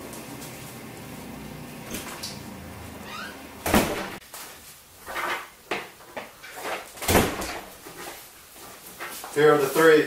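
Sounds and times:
scuffs and rustles: 7.6 - 10.0.

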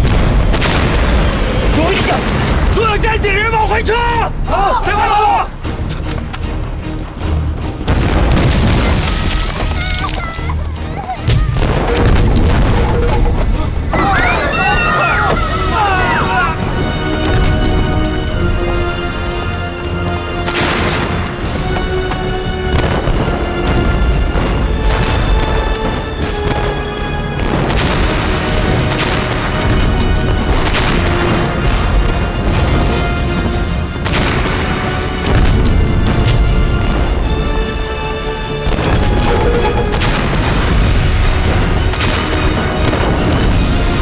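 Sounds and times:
film explosion effects: 0.0 - 4.4, 7.8 - 9.7, 11.4 - 19.4, 20.2 - 44.0
dramatic orchestral music: 0.0 - 44.0.

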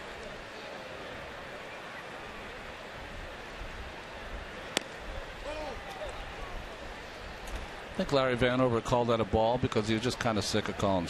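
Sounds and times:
crowd murmur: 0.0 - 11.0.

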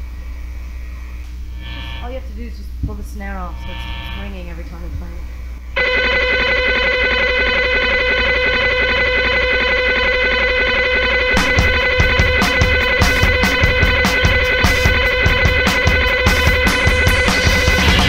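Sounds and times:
electric guitar chord: 5.8 - 18.0
drum hits: 11.4 - 18.0.

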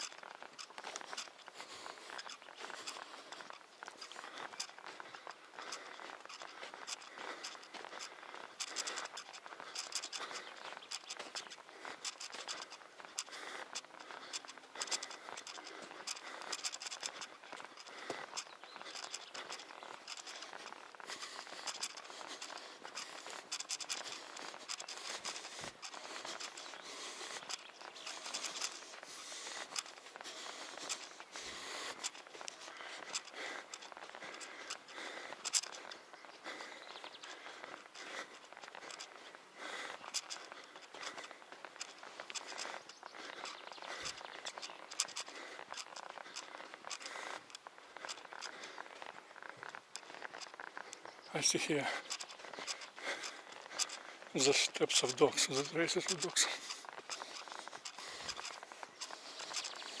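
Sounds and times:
footsteps on sandy dirt: 0.0 - 60.0.

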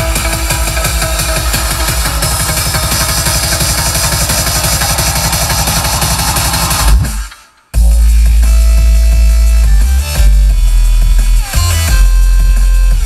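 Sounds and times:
electronic dance music with heavy bass: 0.0 - 13.0.

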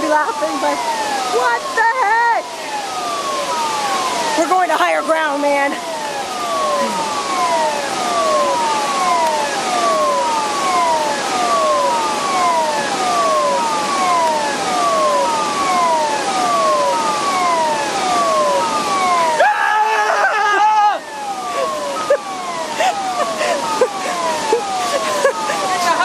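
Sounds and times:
flood warning siren wailing: 0.0 - 26.0
loud steady-pitched tones: 0.0 - 26.0.

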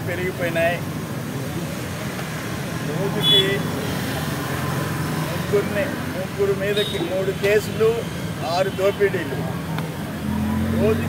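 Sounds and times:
low rumble of vehicles: 0.0 - 11.0.

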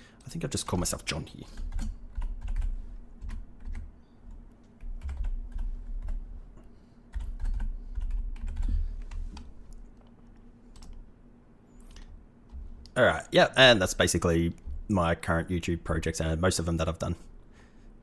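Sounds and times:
typing on computer keyboard: 1.5 - 6.2, 7.1 - 8.7.

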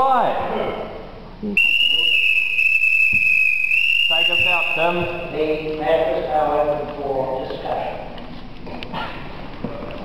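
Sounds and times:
high-pitched whistling tone: 1.6 - 5.4.

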